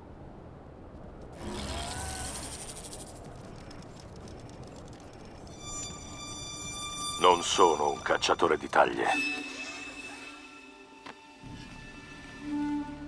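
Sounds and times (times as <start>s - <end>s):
low wind-like rumble: 0.0s - 9.2s
high musical drone: 5.4s - 13.0s
rising whistling calls: 5.4s - 13.0s.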